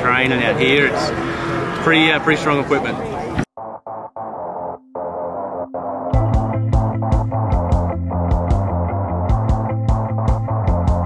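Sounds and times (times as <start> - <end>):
distorted electric guitar: 3.6 - 11.0
steady drum beat: 6.1 - 11.0.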